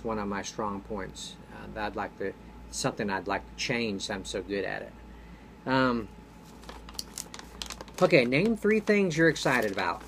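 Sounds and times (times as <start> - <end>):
paper rustling and crinkling: 6.4 - 10.0.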